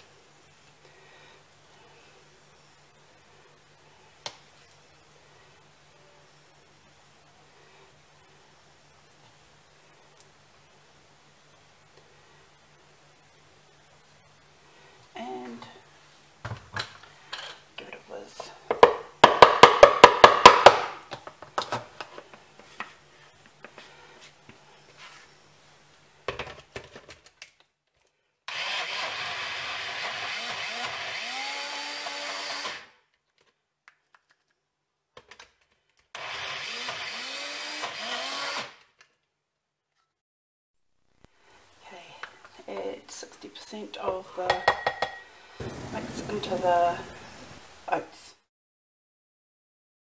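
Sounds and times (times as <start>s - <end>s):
blender cup knocks and clatter: 18.7s - 20.9s
blender motor running: 28.5s - 32.9s, 36.2s - 38.8s.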